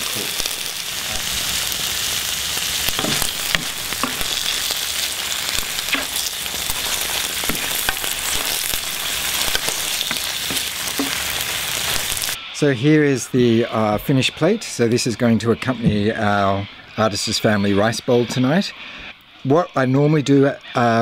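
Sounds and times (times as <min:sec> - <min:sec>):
mushrooms sizzling in pan: 0:00.0 - 0:12.4
wooden spoon stirring: 0:03.0 - 0:12.4.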